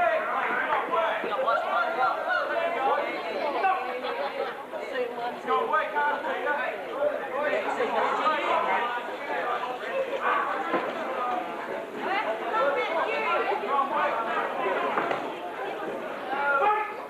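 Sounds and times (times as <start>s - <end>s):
crowd talking and calling out: 0.0s - 17.0s.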